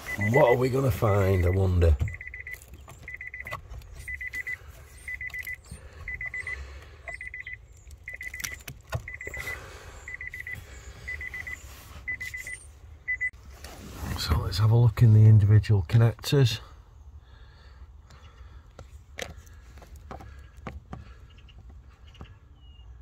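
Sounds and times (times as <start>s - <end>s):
hands handling wiring: 0.0s - 9.5s
car door warning chime beeping: 0.0s - 13.4s.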